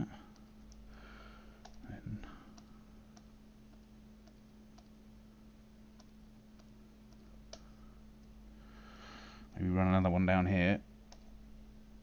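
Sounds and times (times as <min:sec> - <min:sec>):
low electrical hum: 0:00.0 - 0:12.0
computer mouse clicks: 0:00.3 - 0:00.9, 0:01.6 - 0:01.9, 0:02.5 - 0:05.0, 0:05.9 - 0:08.4, 0:11.1 - 0:11.4.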